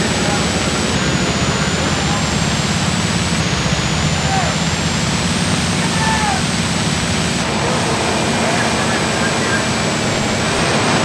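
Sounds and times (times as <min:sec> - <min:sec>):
faint distant voices: 0:00.0 - 0:11.0
fire engines and pumps rumbling: 0:00.0 - 0:11.0
tape hiss: 0:00.0 - 0:11.0
thin high whine: 0:00.0 - 0:11.0.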